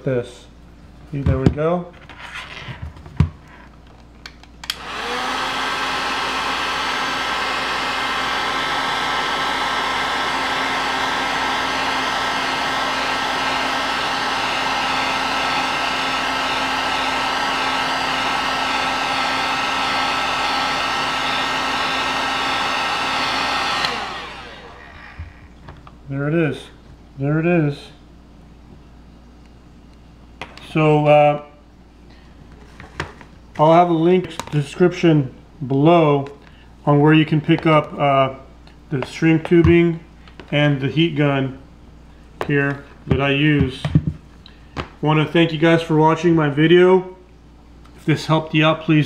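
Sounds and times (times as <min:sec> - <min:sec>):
heat gun fan whine: 0:03.1 - 0:27.9, 0:29.4 - 0:49.0.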